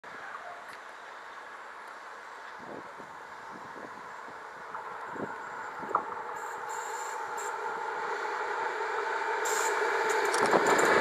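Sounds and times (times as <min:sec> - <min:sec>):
distant vehicle hiss: 0:00.1 - 0:11.0.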